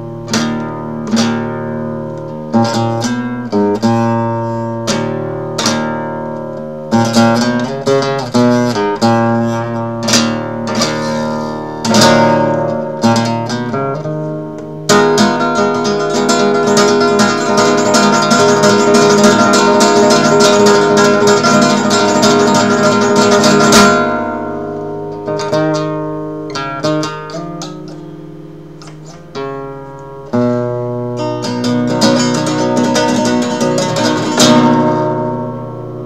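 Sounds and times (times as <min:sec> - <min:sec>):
flamenco guitar playing: 0:00.0 - 0:36.0.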